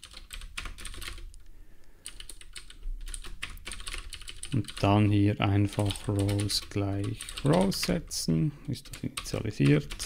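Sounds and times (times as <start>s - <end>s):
computer keyboard typing: 0.0s - 1.4s, 2.0s - 5.0s, 5.6s - 8.0s, 8.8s - 10.0s.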